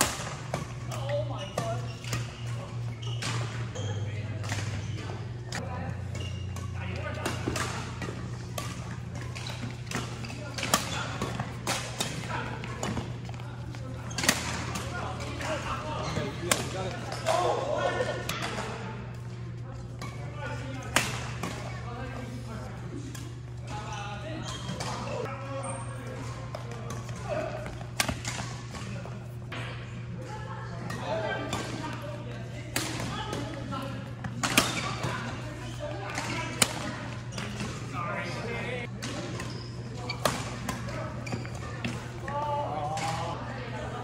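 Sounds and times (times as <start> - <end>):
background chatter: 2.4 - 44.0.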